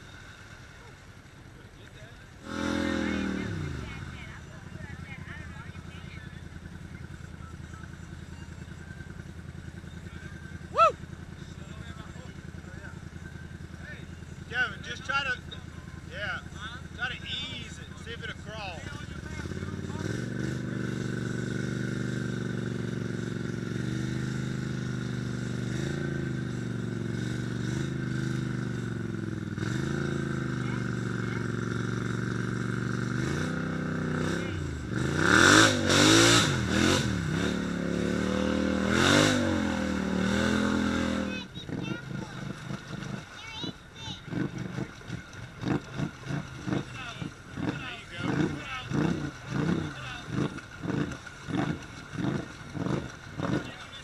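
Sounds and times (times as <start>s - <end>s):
atv engine running and revving: 0.0s - 54.0s.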